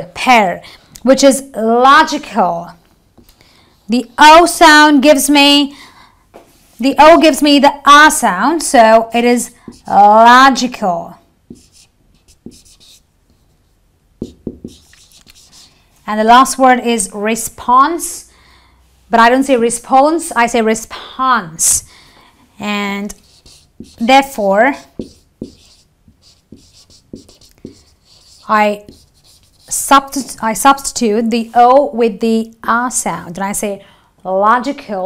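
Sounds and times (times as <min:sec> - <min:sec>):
marker scratching on whiteboard: 0:09.2 - 0:10.7, 0:11.5 - 0:15.8, 0:23.0 - 0:30.9.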